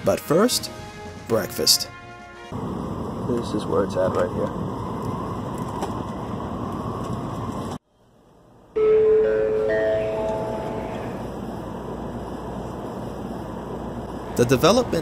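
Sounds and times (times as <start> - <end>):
train interior running noise: 2.5 - 15.0
four-note rising chime: 8.8 - 11.2.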